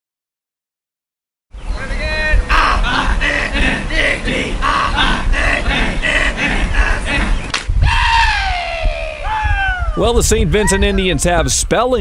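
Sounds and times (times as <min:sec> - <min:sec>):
team shouting in unison: 0:02.0 - 0:10.0.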